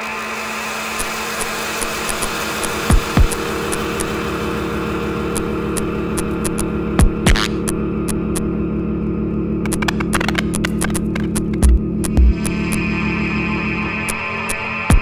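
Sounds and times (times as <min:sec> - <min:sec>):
ambient electronic music: 0:00.0 - 0:15.0
buzzing drone: 0:00.0 - 0:15.0
sharp clicks: 0:07.3 - 0:08.5, 0:09.7 - 0:12.2.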